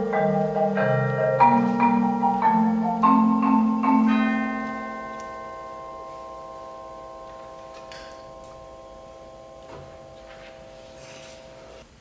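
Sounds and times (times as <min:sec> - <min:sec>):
mallet percussion chord ringing: 0:00.0 - 0:11.6.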